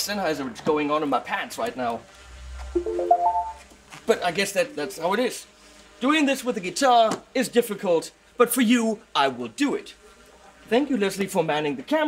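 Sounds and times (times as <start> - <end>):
rising power-on chime: 2.8 - 3.6.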